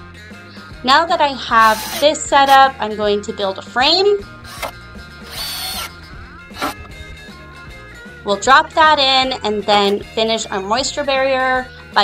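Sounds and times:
background music: 0:00.0 - 0:12.0
cordless drill driving screw: 0:01.6 - 0:02.6, 0:04.5 - 0:06.8.

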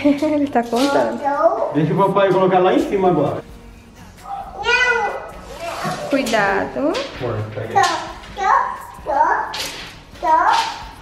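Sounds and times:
toddler calling and babbling: 0:01.1 - 0:01.8, 0:04.3 - 0:06.1, 0:07.8 - 0:11.0.

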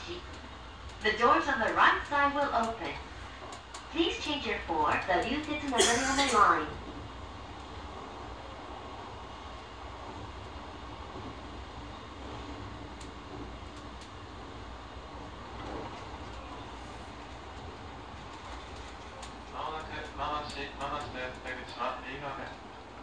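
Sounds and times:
train wheels rumbling on rails: 0:00.0 - 0:23.0
faint clicks: 0:00.2 - 0:03.9, 0:12.9 - 0:14.2, 0:18.2 - 0:21.8.

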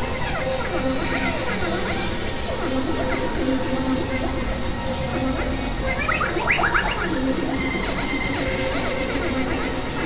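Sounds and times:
synthesizer chirping falling glides: 0:05.9 - 0:08.1.

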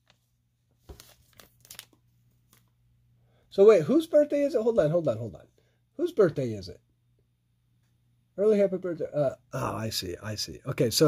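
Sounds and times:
foil wrapper crinkling: 0:00.8 - 0:02.7.

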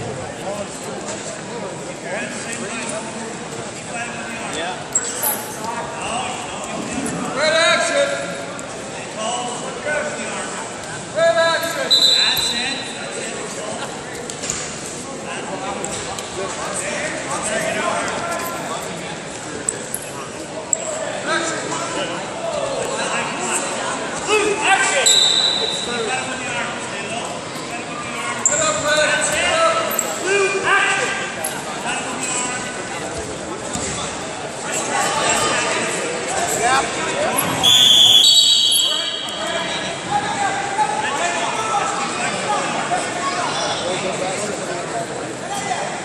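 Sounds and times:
voices calling out in echoing hall: 0:00.0 - 0:46.0
voices shouting short calls: 0:37.6 - 0:41.0.

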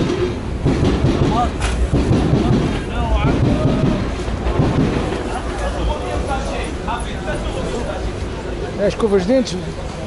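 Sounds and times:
train rumbling overhead: 0:00.0 - 0:10.0.

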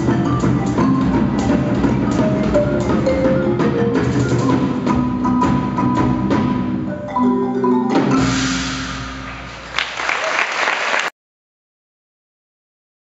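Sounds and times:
marimba notes: 0:00.0 - 0:09.7
percussion ensemble playing: 0:00.0 - 0:11.1.

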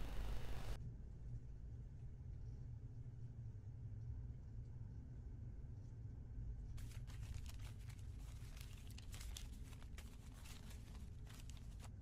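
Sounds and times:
low steady hum: 0:00.0 - 0:12.0
cloth rustling and scratching: 0:06.8 - 0:12.0.

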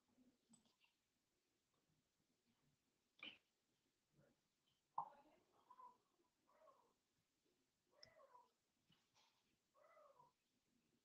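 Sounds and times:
faint animal whining calls: 0:09.8 - 0:10.4.

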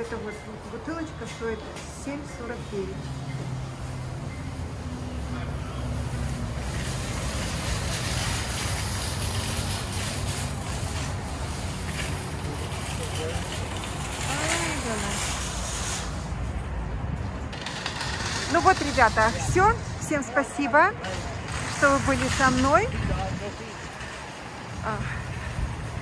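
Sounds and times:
traffic noise: 0:00.0 - 0:26.0
wind: 0:00.0 - 0:26.0.

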